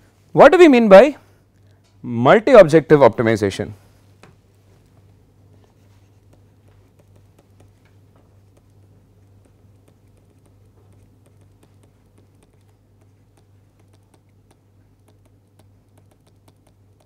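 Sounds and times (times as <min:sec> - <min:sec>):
steady low hum: 0:00.0 - 0:17.0
stylus tapping on a tablet: 0:06.1 - 0:17.0.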